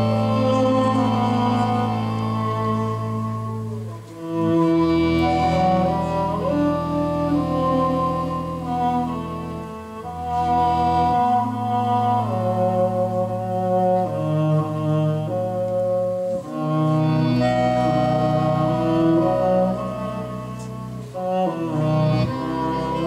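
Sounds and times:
band playing slow instrumental: 0.0s - 23.0s
upright bass line: 0.0s - 23.0s.

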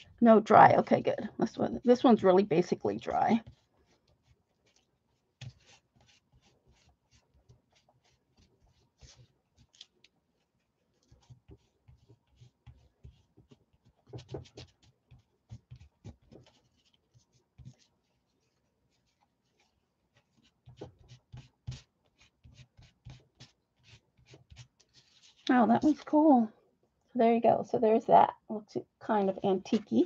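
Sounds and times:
paper towel scrubbing a surface: 3.3s - 26.0s.

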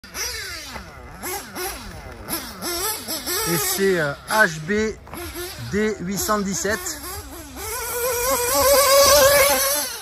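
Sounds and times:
model buggy engine revving: 0.0s - 10.0s.

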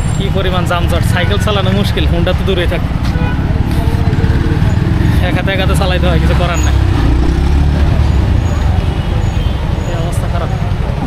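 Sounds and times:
traffic engines and road noise: 0.0s - 11.0s
voices of people: 0.0s - 11.0s
heavy low rumble: 1.9s - 9.0s.

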